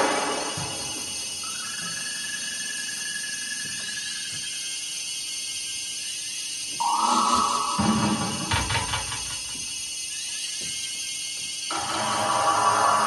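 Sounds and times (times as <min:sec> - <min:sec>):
lower electronic tone: 0:06.8 - 0:08.9
high held electronic tone: 0:06.8 - 0:09.6.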